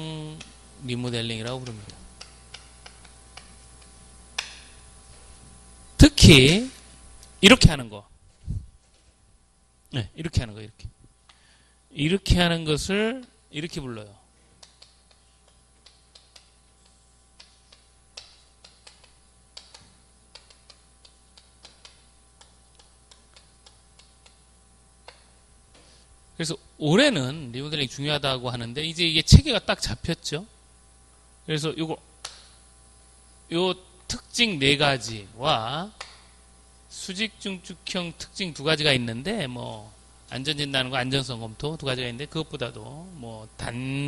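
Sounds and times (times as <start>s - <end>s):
chalk tapping on a blackboard: 1.4s - 4.7s, 14.6s - 25.9s.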